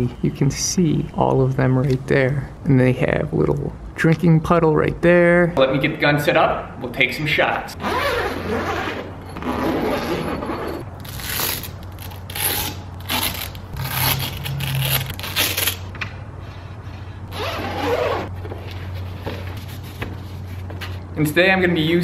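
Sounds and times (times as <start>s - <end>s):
zipper pulled open: 7.8s - 15.9s, 17.3s - 18.3s
fabric and gear rustling: 17.3s - 21.1s.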